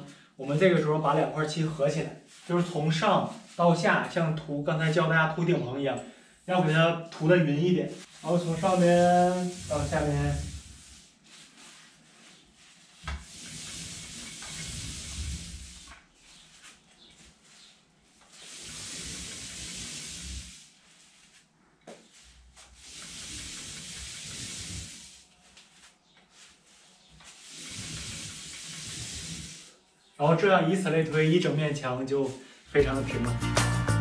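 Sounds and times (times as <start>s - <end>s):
paint roller rolling on wall: 0.4s - 5.4s, 6.5s - 32.1s.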